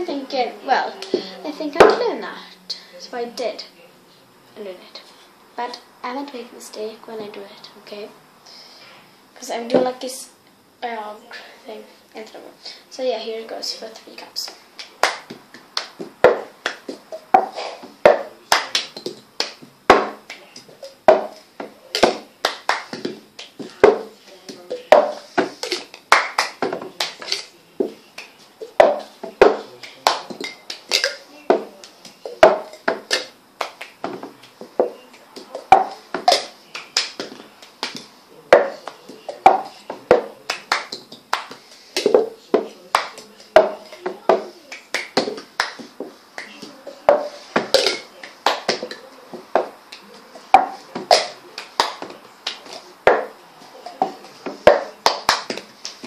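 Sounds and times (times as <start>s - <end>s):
hand claps: 14.5s - 56.0s
cups tapping on tabletop: 15.1s - 28.0s, 28.6s - 56.0s.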